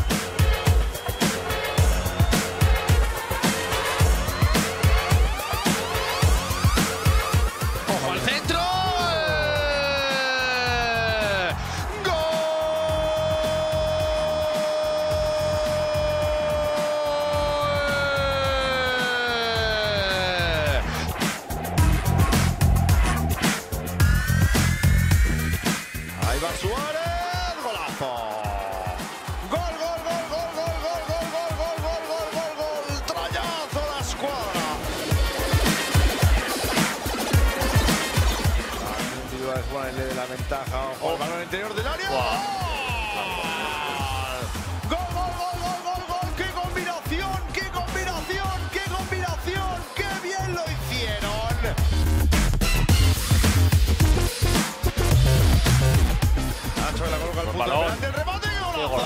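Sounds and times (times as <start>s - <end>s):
electronic music with steady beat: 0.0s - 59.0s
commentator shouting: 7.8s - 22.4s, 26.2s - 35.1s, 39.5s - 51.9s, 56.2s - 59.0s.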